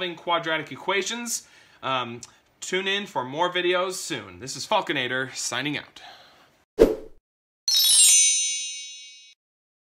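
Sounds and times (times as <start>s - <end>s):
high metallic ding: 7.7s - 9.4s.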